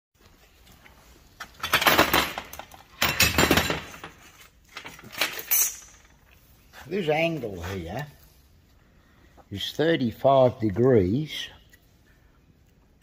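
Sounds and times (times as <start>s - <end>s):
metal tools clattering on workbench: 1.4s - 6.2s.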